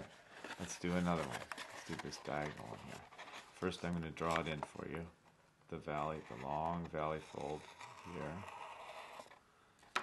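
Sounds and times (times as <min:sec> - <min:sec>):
marker scratching on paper: 0:07.3 - 0:09.4.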